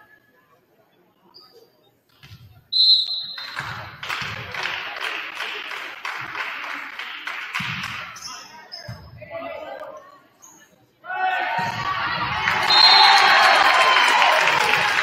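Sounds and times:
referee whistle blast: 2.8 - 3.5, 12.6 - 13.3
crowd clapping: 3.4 - 8.1, 12.4 - 15.0
volleyball thumps: 7.6 - 8.0, 11.6 - 12.6.

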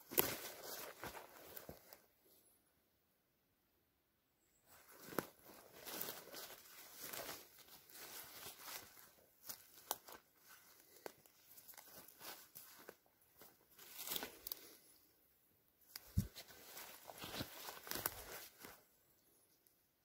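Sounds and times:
footsteps crunching twigs: 0.0 - 2.0, 4.7 - 15.0, 15.9 - 18.9.

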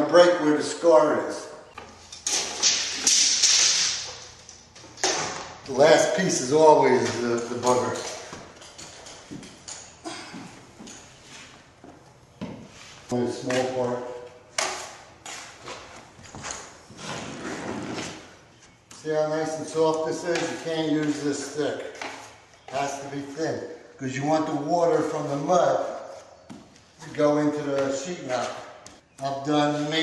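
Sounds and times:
drywall scraping against wood: 14.7 - 18.4.

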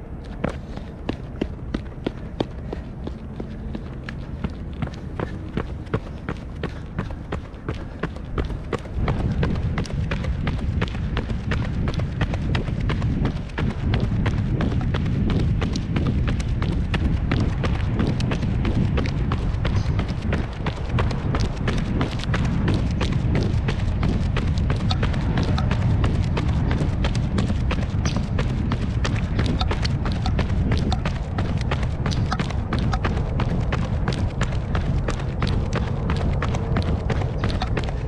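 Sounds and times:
low rumble: 0.0 - 38.0
running footsteps on pavement: 0.0 - 38.0.

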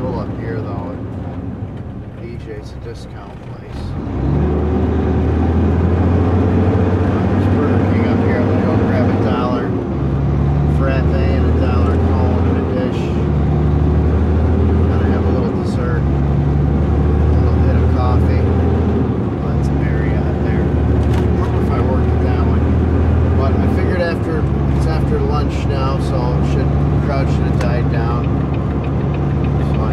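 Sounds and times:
truck diesel engine shifting gears: 0.0 - 29.9.

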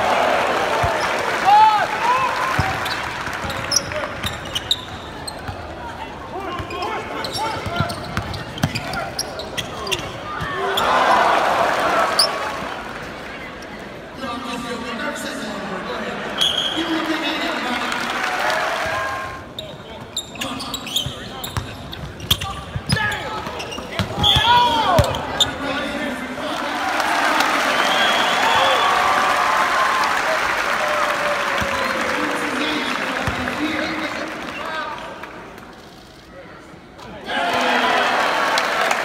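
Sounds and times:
sneaker squeaks: 2.5 - 5.6, 6.5 - 10.9, 19.6 - 25.6
voices in a gym: 3.7 - 11.2, 11.8 - 27.2, 32.1 - 38.4.

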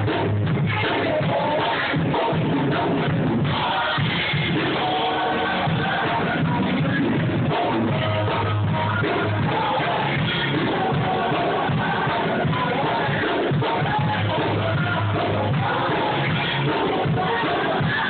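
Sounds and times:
gospel choir singing: 0.9 - 18.0.

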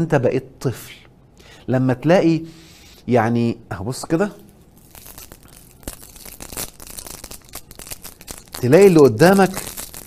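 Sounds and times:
plastic wrapper crinkling: 4.4 - 10.0.

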